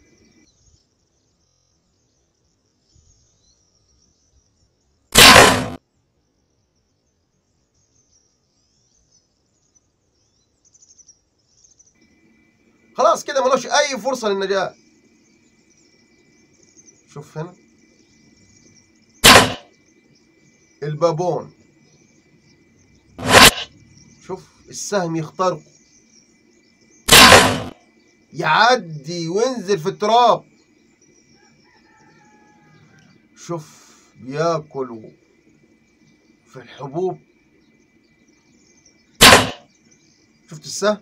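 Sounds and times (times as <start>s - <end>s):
arrow striking animal: 5.2s - 5.8s, 19.2s - 19.7s, 23.2s - 23.7s, 27.1s - 27.8s, 39.2s - 39.6s
hunting bow shot thwack: 5.2s - 5.8s, 19.2s - 19.6s, 23.2s - 23.7s, 27.1s - 27.7s, 39.2s - 39.6s.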